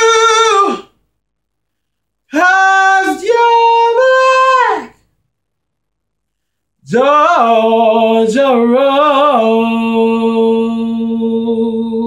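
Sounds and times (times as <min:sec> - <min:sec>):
man singing a cappella: 0:00.0 - 0:01.0, 0:02.2 - 0:05.0, 0:06.8 - 0:12.0.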